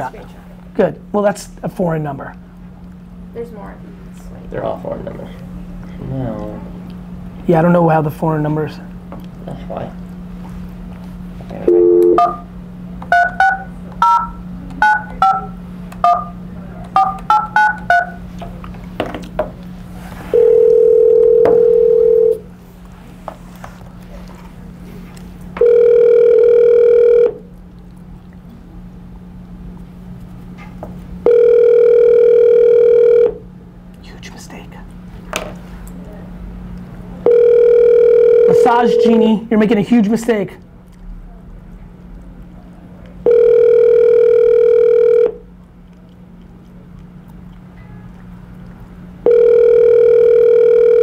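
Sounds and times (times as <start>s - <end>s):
voice on phone line: 11.6s - 12.4s, 37.4s - 39.5s
dial tone: 11.7s - 12.5s, 13.1s - 16.3s, 20.3s - 22.5s, 25.6s - 27.5s, 31.2s - 33.4s, 37.2s - 39.2s, 43.3s - 45.4s, 49.2s - 51.0s
ringback tone: 11.7s - 12.5s, 49.3s - 51.0s
touch-tone key beeps: 13.1s - 16.4s, 17.0s - 18.2s.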